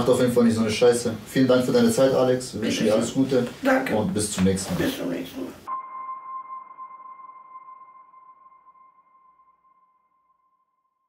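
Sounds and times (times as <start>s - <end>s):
ringing electronic tone: 5.7s - 10.7s.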